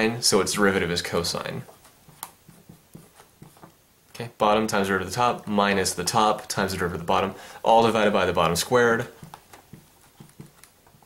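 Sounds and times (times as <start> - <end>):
marker pen writing: 1.7 - 3.8, 8.4 - 11.0.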